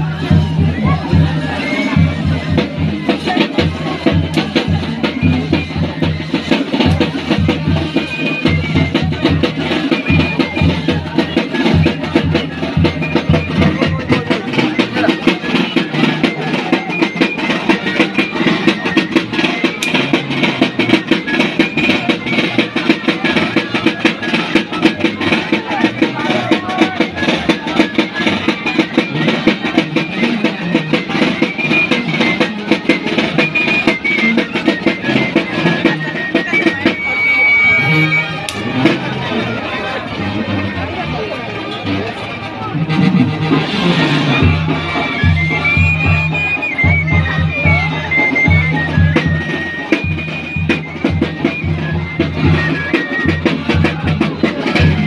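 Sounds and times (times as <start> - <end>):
live band music: 0.0 - 55.0.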